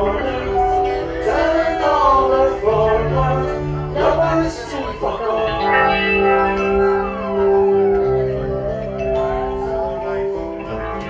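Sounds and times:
acoustic and electric guitars: 0:00.0 - 0:11.0.

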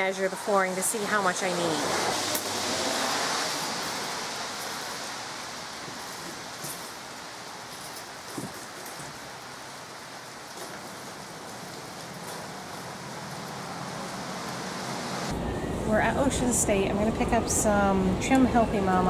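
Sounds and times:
steady rain falling: 0:00.1 - 0:15.3.

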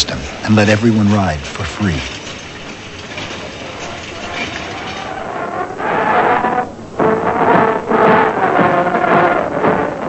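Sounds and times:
train rattling on rails: 0:00.0 - 0:05.6.

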